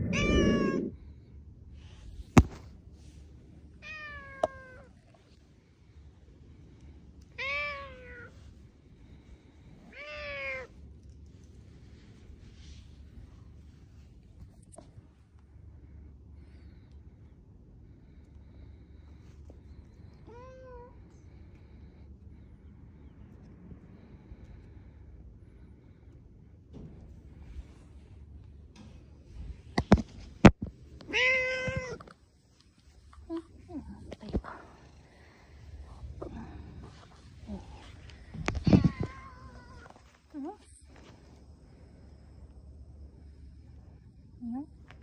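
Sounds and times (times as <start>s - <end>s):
cat meowing: 0.0s - 1.0s, 7.4s - 8.3s, 9.9s - 10.7s, 31.0s - 32.1s
low background rumble: 0.0s - 45.0s.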